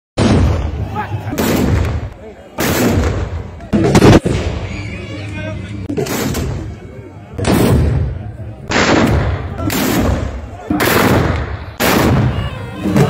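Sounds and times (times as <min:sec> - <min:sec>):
men's voices: 0:00.7 - 0:02.6.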